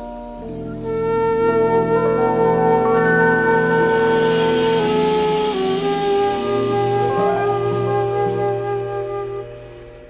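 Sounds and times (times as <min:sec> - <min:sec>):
jazz flute long note: 0:00.0 - 0:10.0
low bass note: 0:01.9 - 0:08.1.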